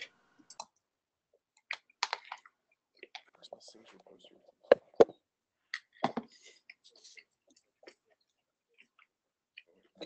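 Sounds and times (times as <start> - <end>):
mouse and keyboard clicks: 1.6 - 3.3.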